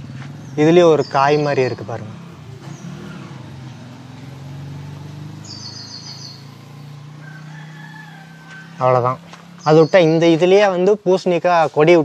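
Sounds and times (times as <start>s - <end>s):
long drawn-out bird call: 5.2s - 9.0s.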